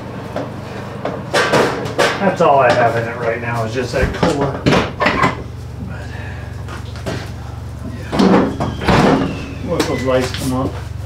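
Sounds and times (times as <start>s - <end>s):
metal clunk and rattle: 1.1s - 3.0s.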